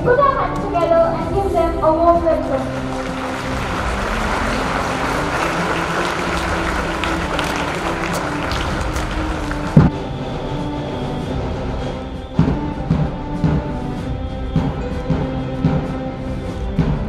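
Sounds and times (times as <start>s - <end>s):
background music: 0.0s - 17.0s
crowd applauding: 2.5s - 9.9s.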